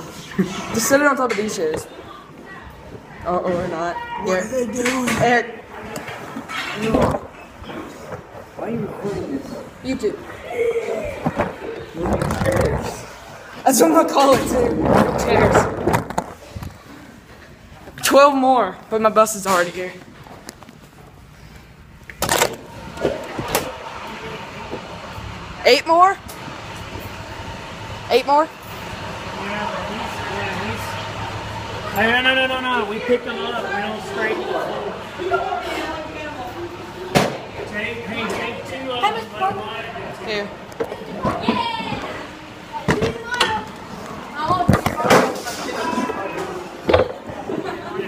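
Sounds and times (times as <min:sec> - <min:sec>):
children's voices: 0:10.2 - 0:13.0, 0:40.8 - 0:48.0
loud rush of noise: 0:11.4 - 0:16.5.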